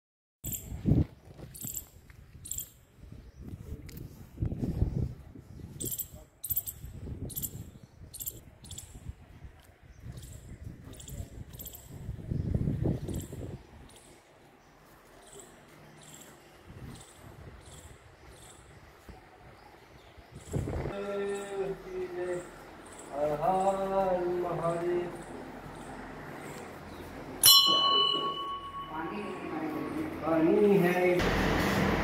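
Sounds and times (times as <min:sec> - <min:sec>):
insect chirping in high bursts: 0:08.1 - 0:08.8.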